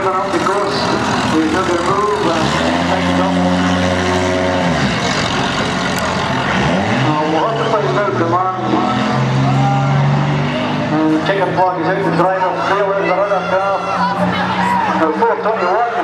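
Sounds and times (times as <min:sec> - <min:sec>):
car engine revving hard: 0:00.0 - 0:16.0.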